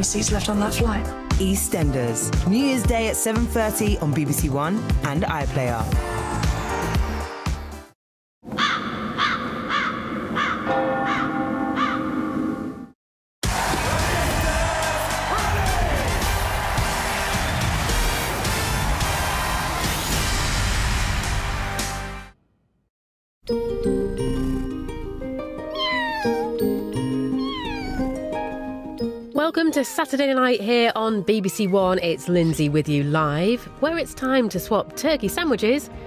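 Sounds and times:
crow cawing: 8.5 - 12.1
gentle music with held notes: 23.5 - 30.4
cat meowing: 25.7 - 26.7, 27.3 - 28.2.

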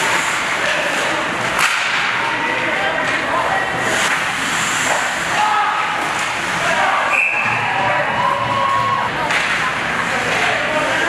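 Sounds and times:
crowd cheering and shouting: 5.3 - 9.4
whistle-like tone: 7.1 - 7.6.

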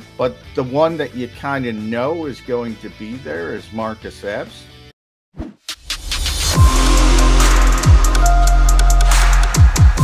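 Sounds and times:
electronic music: 5.8 - 10.0
deep bass boom: 6.5 - 10.0.

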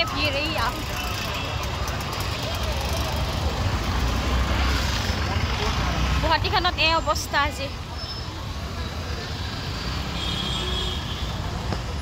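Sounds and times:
cars and scooters rumbling: 0.0 - 12.0
faint crowd chatter: 0.0 - 12.0.

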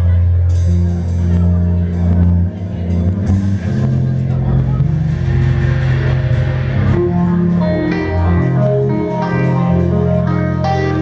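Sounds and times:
bass guitar notes: 0.0 - 11.0
live rock band playing: 0.0 - 11.0.

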